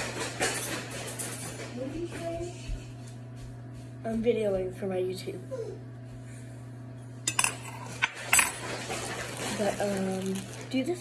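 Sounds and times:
metal cutlery clinking: 7.3s - 9.2s.

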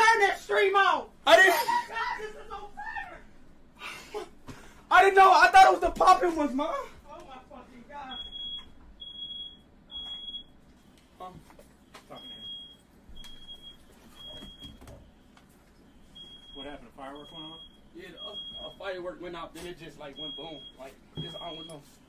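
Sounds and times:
smoke alarm beeping: 8.0s - 10.6s, 12.1s - 15.2s, 16.0s - 19.1s, 20.0s - 22.0s.

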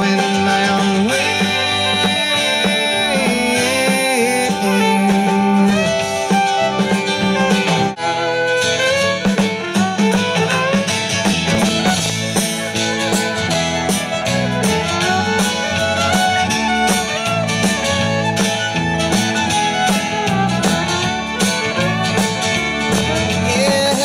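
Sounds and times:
drums keeping a steady beat: 0.0s - 24.0s
fiddle lead: 0.0s - 24.0s
strummed acoustic guitar: 0.0s - 24.0s.

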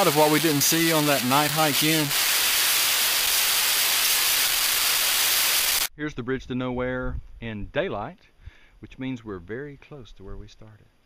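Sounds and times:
loud rushing hiss: 0.0s - 5.9s.

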